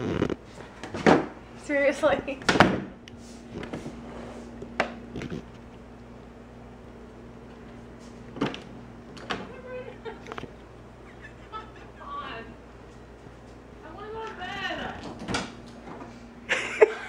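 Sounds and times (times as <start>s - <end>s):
low steady hum: 0.0s - 17.0s
faint laughter: 9.6s - 10.4s, 11.0s - 12.2s, 16.5s - 17.0s.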